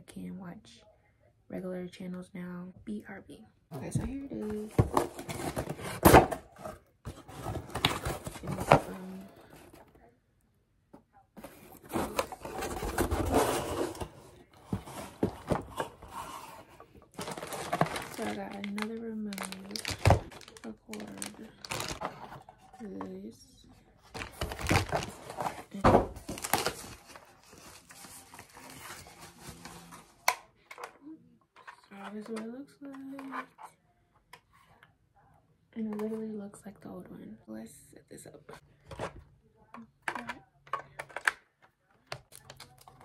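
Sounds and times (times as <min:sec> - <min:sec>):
wrappers crinkling: 0:17.1 - 0:22.2, 0:24.1 - 0:29.9
packing tape tearing: 0:17.2 - 0:22.0.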